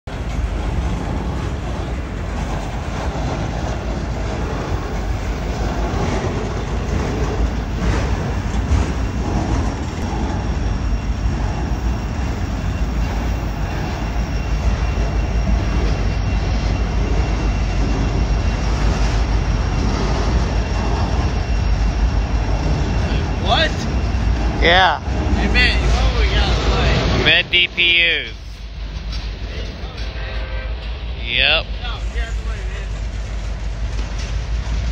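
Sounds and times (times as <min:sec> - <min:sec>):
train wheels rumbling on rail: 0:00.0 - 0:34.9.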